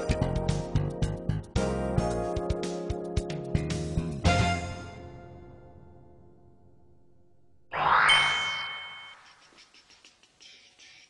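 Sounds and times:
bright bell-like ding: 8.0 - 9.3.

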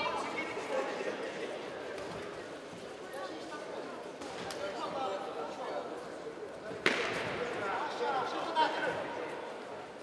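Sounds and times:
voices in a hall: 0.0 - 10.0
sharp smack of a strike: 6.8 - 7.3.

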